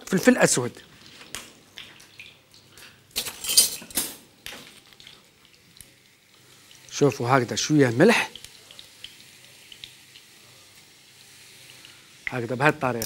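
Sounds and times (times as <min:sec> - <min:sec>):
spoon clinking and scraping: 0:03.2 - 0:04.8.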